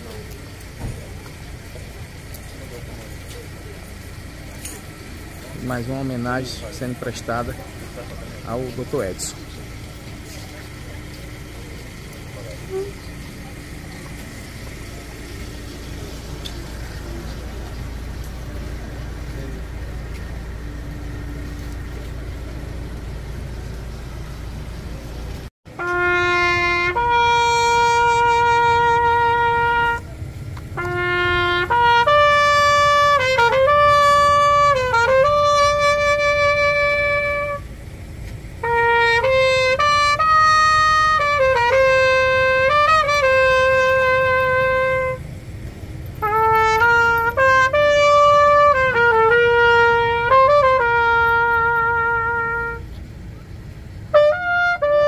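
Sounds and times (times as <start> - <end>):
solo trumpet playing long notes: 25.7 - 37.7, 38.6 - 45.3, 46.2 - 52.9, 54.1 - 55.0.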